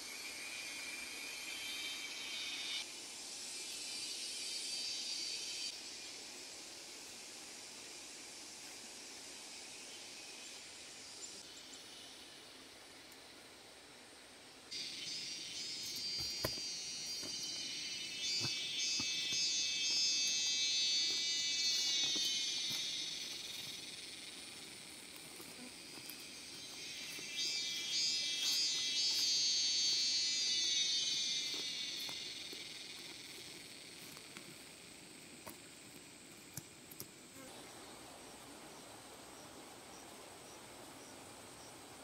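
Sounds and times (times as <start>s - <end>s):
cicadas buzzing: 0.0s - 42.0s.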